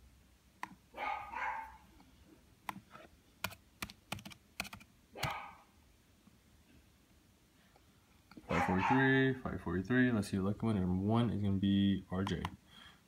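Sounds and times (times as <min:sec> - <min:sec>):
laptop keyboard clicks: 0:03.4 - 0:05.4.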